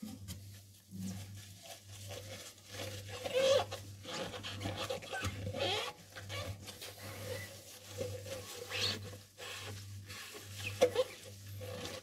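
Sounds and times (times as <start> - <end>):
rubber gloves squeaking on porcelain: 2.0 - 12.0.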